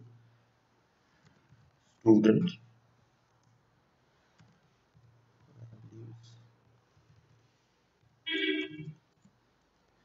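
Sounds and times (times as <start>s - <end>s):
faint keyboard clicks: 4.3s - 6.0s.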